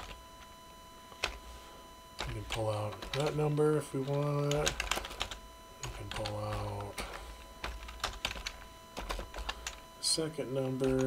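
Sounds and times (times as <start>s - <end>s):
computer keyboard keystrokes: 2.2s - 3.4s, 4.0s - 9.8s.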